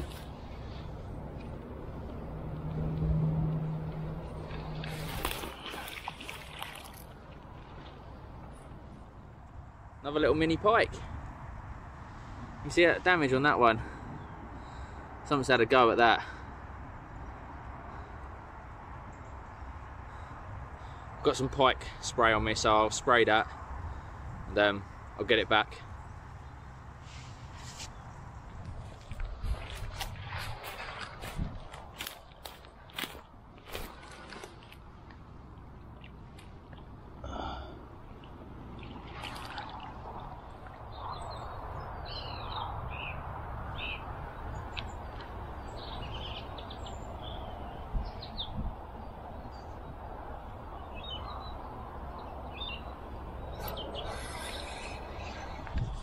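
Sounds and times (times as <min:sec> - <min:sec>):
small birds chirping: 0:40.2 - 0:56.0.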